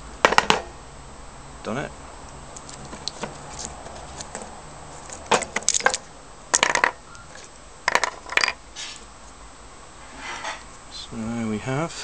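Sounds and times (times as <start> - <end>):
steel laminations clinking: 5.0 - 9.0.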